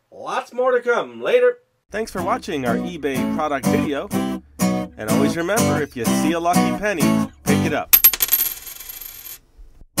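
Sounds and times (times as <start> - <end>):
coin bouncing and ringing: 8.0 - 9.4.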